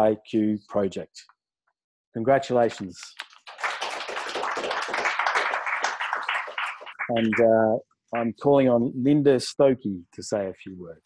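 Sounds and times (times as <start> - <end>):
applause: 3.2 - 7.5.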